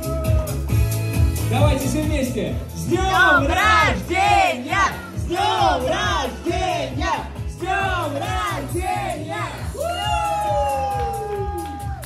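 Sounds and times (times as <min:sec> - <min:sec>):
amplified backing track with beat: 0:00.0 - 0:12.0.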